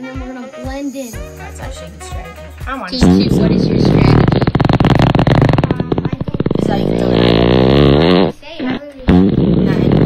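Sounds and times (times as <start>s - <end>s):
buzzy raspberry: 2.9s - 10.0s.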